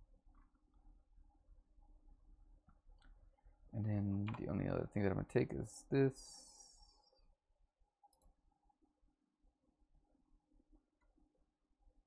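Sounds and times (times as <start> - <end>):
computer mouse click: 8.1 - 8.4.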